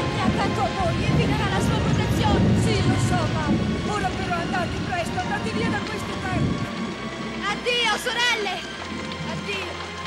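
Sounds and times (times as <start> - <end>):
low rumble: 0.0 - 9.4.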